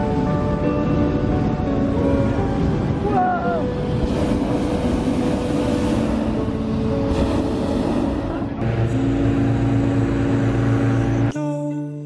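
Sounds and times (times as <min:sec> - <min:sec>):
background music: 0:00.0 - 0:12.0
propane burner blast: 0:03.8 - 0:11.3.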